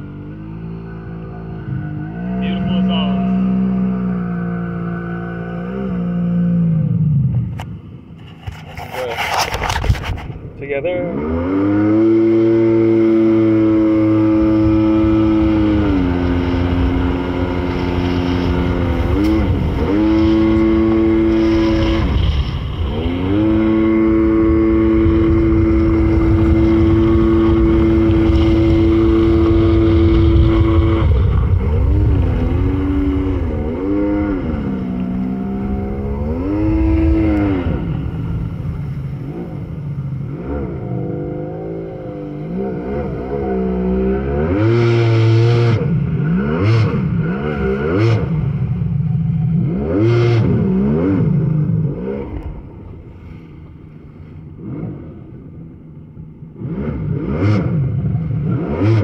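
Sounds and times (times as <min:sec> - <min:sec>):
jet ski engine running: 0:00.0 - 0:58.8.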